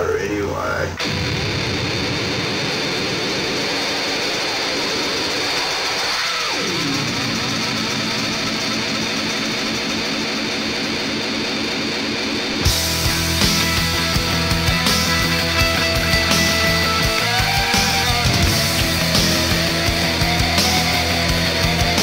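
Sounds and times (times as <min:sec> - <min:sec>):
distorted guitar noise: 0:00.0 - 0:22.0
drums: 0:00.0 - 0:22.0.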